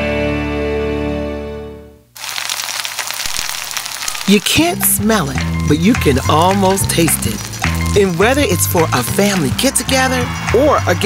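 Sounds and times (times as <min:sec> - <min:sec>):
sausages sizzling in a skillet: 0:02.2 - 0:10.2.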